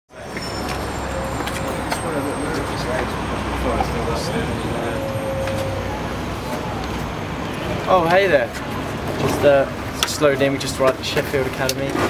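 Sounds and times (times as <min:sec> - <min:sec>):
faint voices: 0:00.1 - 0:09.7
road traffic rumble: 0:00.1 - 0:12.0.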